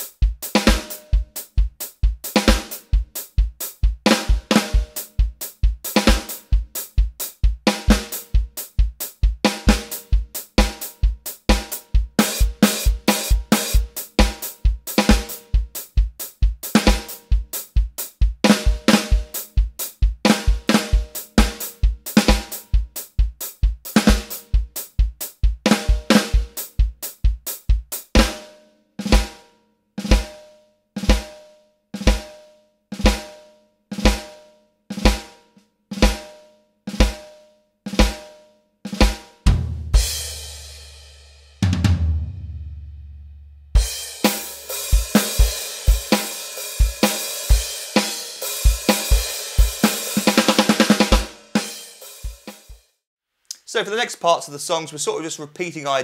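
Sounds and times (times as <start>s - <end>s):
electronic drum kit: 0.0s - 29.4s, 37.9s - 38.3s, 38.9s - 41.0s, 41.6s - 52.8s.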